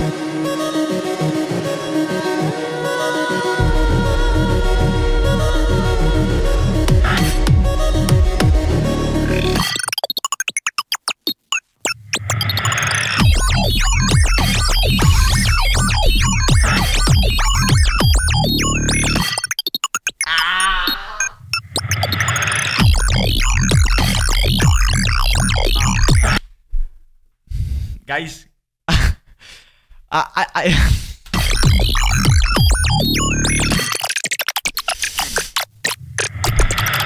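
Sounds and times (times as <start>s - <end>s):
beatbox vocal beats: 6.8s - 8.6s, 9.2s - 26.4s, 30.2s - 37.0s.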